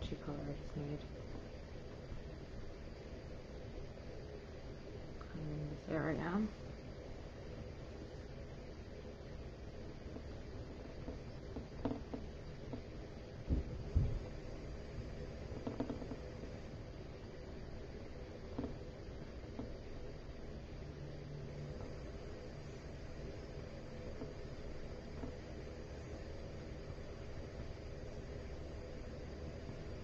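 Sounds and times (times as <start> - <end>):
soft low thumps: 10.0 - 16.4.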